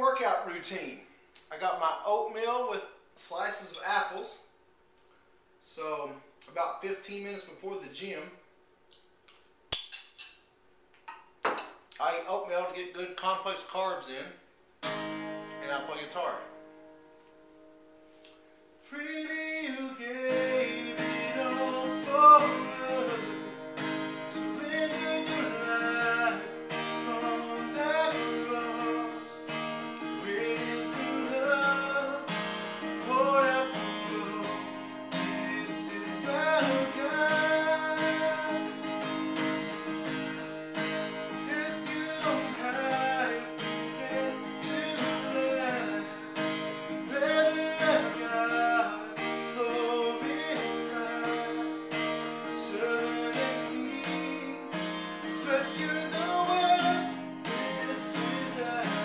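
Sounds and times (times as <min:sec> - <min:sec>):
acoustic guitar strumming: 0:14.8 - 0:59.0
man singing: 0:18.9 - 0:23.6, 0:24.3 - 0:39.4, 0:41.3 - 0:59.0.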